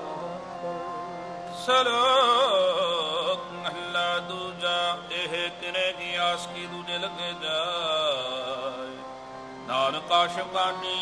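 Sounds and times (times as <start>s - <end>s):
harmonium playing held notes: 0.0s - 11.0s
person singing devotional lines: 0.0s - 11.0s.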